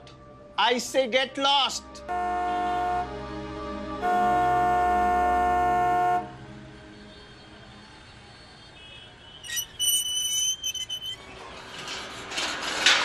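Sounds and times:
car horn honk: 2.1 - 3.2, 4.0 - 6.4
street background noise: 4.1 - 13.0
short choppy high-pitched tones: 9.4 - 11.2.

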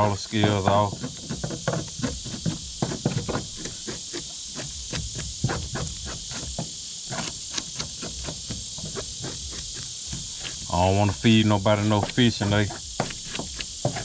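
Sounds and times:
insects chirring: 0.0 - 14.0.

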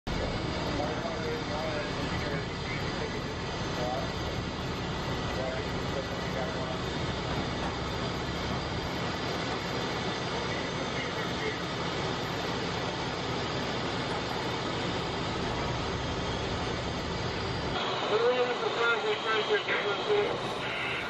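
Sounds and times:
steady engine drone: 0.1 - 21.0.

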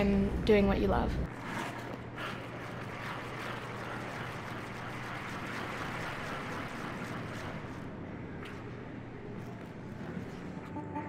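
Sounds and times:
skate blades scraping on ice: 1.4 - 8.6.

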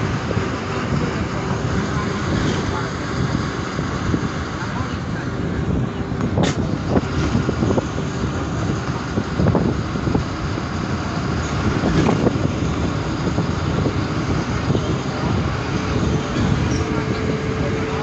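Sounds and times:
moving bus rumble: 0.0 - 18.0
rushing air: 0.0 - 18.0.

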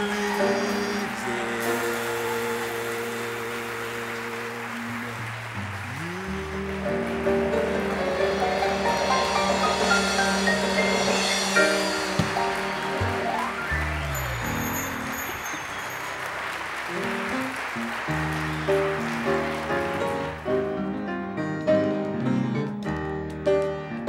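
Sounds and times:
keyboard-led band music: 0.0 - 24.0.

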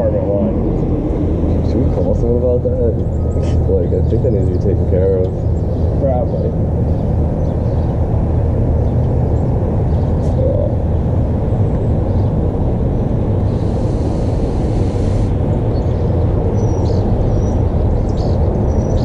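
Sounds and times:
low outdoor rumble: 0.0 - 19.0
vapour exhale: 13.5 - 15.3.

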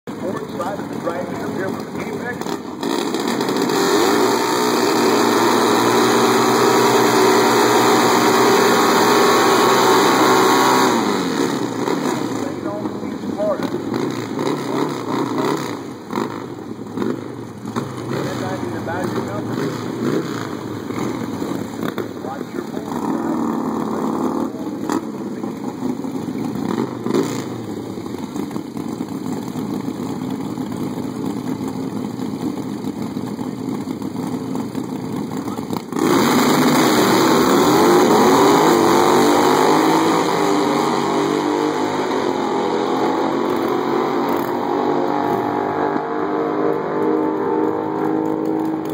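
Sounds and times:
motorcycles accelerating at full throttle: 0.0 - 48.9
motorcycles idling and revving: 0.0 - 48.9.

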